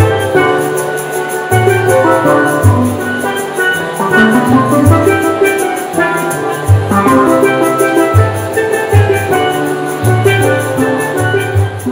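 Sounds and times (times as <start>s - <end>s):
drum kit beat: 0.0s - 11.9s
low bass-pan notes: 0.0s - 11.9s
steelpans ringing a melody: 0.0s - 11.9s.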